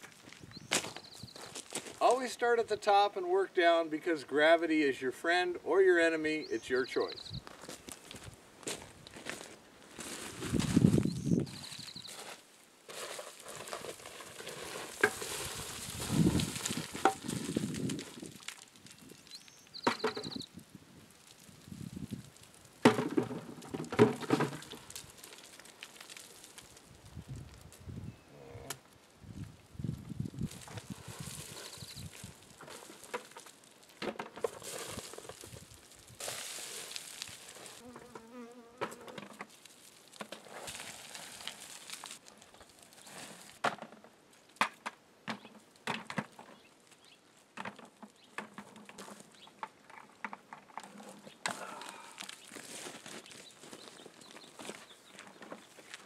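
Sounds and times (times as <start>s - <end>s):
boots crunching on gravel: 0.0s - 2.3s, 7.0s - 19.6s, 24.3s - 27.0s, 30.2s - 37.8s, 39.4s - 43.6s, 51.6s - 56.0s
rocks dropped into plastic bucket: 13.0s - 20.5s, 21.4s - 26.9s, 30.4s - 38.2s, 38.8s - 42.7s, 43.3s - 46.6s, 47.5s - 52.4s.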